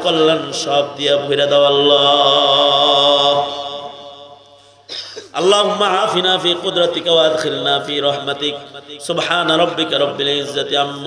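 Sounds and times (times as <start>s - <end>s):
man chanting into a microphone: 0.0s - 4.6s, 5.3s - 11.0s.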